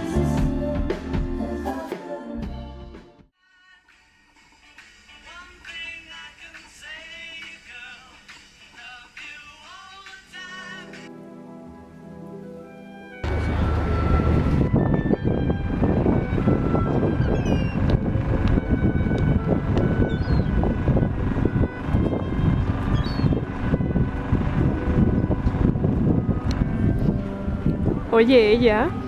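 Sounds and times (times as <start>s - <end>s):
gulls calling: 13.2s - 25.6s
wind buffeting microphone: 13.2s - 29.0s.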